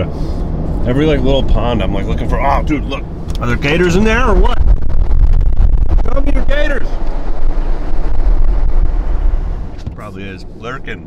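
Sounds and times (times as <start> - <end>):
wind and road noise in vehicle: 0.0 - 11.0.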